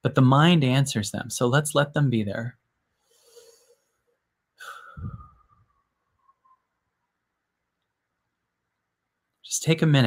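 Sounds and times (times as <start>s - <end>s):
breath blowing on microphone: 4.6s - 5.8s.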